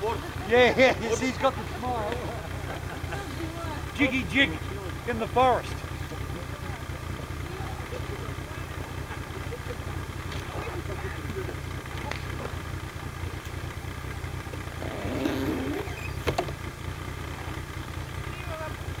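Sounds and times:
quiet voices: 0:00.0 - 0:12.6, 0:14.7 - 0:16.1
snowmobile engine idling: 0:00.0 - 0:19.0.

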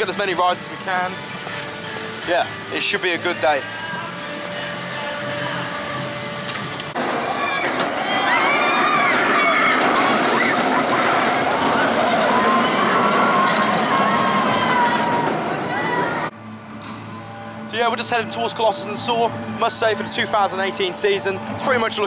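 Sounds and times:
roller coaster rumbling on track: 0:05.7 - 0:16.3
riders screaming and shouting: 0:07.0 - 0:16.3.

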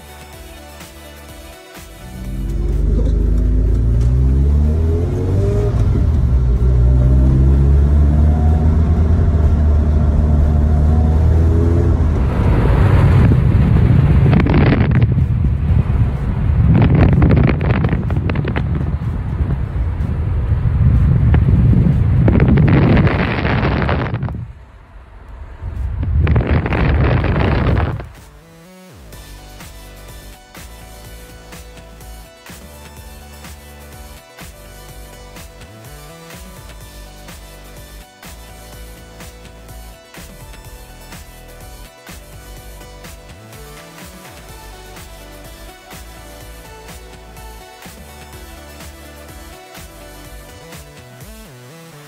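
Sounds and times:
car engine accelerating: 0:02.0 - 0:28.4
wind buffeting microphone: 0:12.0 - 0:24.7, 0:25.4 - 0:28.2.

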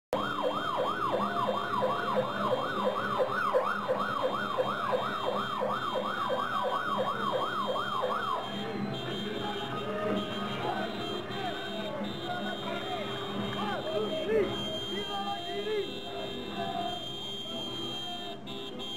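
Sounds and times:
siren yelping: 0:00.1 - 0:13.0.

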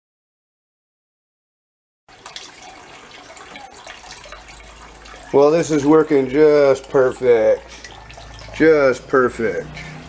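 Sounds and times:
water trickling and splashing: 0:02.1 - 0:10.0.

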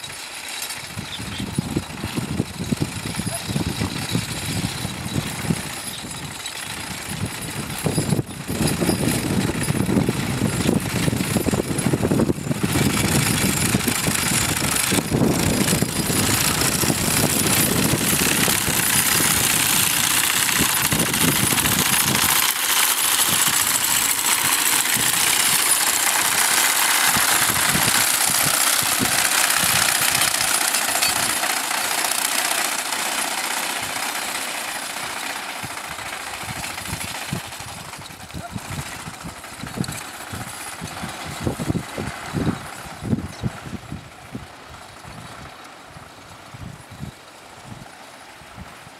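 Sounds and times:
mower knife chattering: 0:13.1 - 0:33.1.

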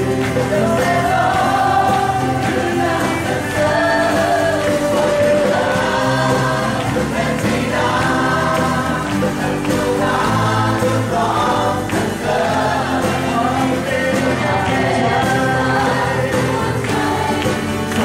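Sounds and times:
acoustic guitar strumming: 0:00.0 - 0:18.0
voices singing along: 0:00.0 - 0:18.0.

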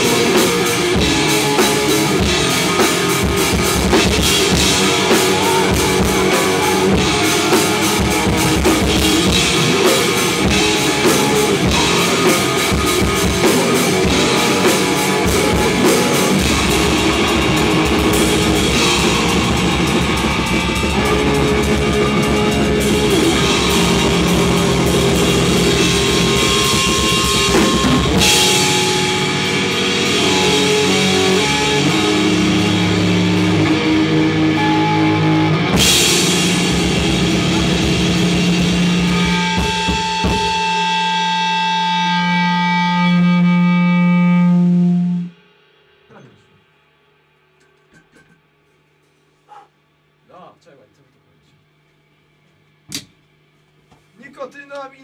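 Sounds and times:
cymbal crashes: 0:00.0 - 0:33.5
drum kit: 0:00.0 - 0:45.4
electric guitar: 0:00.0 - 0:45.5.

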